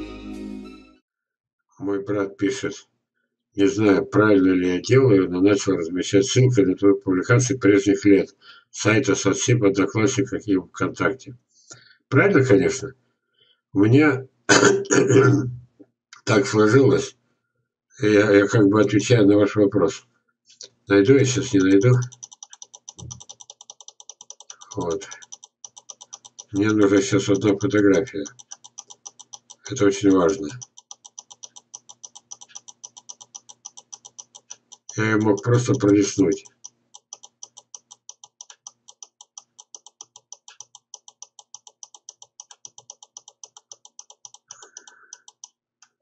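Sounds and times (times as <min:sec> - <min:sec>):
mouse scroll wheel clicking: 0:20.6 - 0:46.0.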